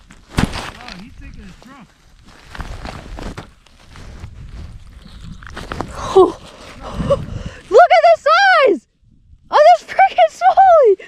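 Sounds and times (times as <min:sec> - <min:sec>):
gloves and clothing rustling: 0:00.0 - 0:07.8.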